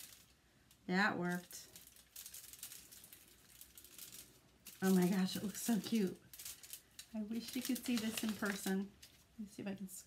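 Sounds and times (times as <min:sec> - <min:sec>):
aluminium foil crinkling: 0:00.0 - 0:09.8.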